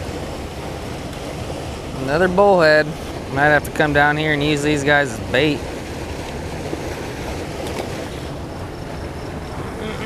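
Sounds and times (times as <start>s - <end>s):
water churning over rocks: 0.0s - 9.9s.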